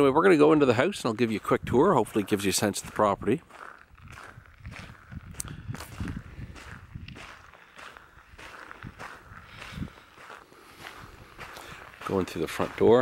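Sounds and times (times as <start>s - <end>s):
footsteps on gravel: 0.3s - 13.0s.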